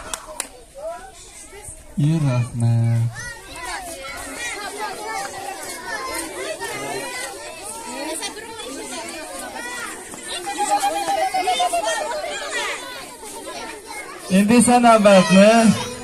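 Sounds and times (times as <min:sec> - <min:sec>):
young children chattering: 0:00.0 - 0:16.0.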